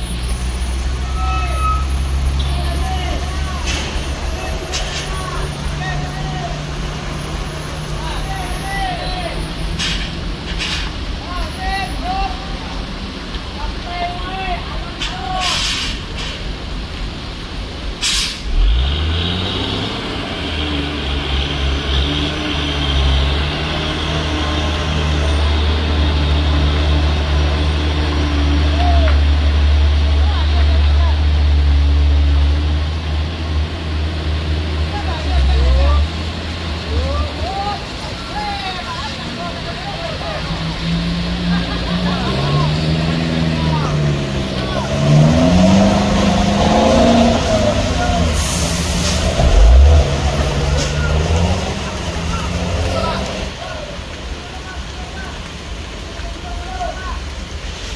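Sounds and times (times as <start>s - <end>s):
truck diesel engine labouring: 0.0s - 57.9s
wet road noise: 0.0s - 57.9s
short burst of hiss: 9.8s - 11.0s, 15.0s - 16.5s, 18.0s - 18.5s.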